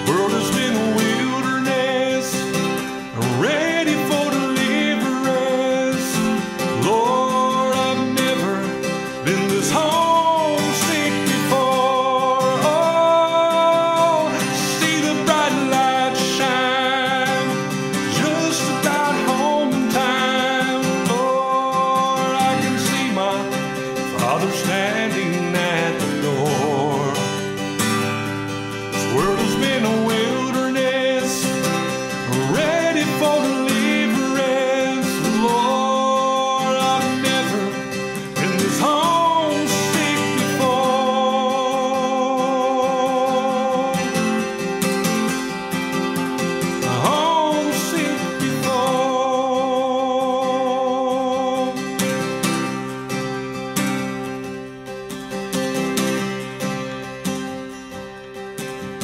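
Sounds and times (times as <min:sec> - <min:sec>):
man singing a gospel song: 0:00.0 - 0:28.1, 0:28.8 - 0:45.6, 0:46.6 - 0:52.7
acoustic guitar: 0:00.0 - 0:59.0.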